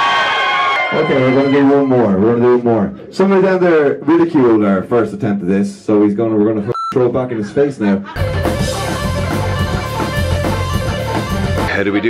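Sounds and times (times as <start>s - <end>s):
rock band playing live: 8.2s - 11.9s.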